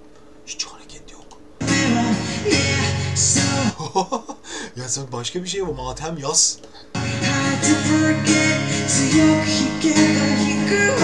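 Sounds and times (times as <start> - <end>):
man singing: 1.6 - 3.8, 7.0 - 11.0.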